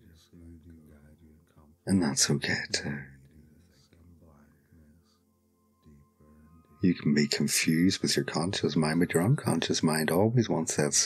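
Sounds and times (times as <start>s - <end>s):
man narrating: 0.0s - 5.2s, 5.8s - 11.0s
man whispering softly: 0.0s - 8.5s.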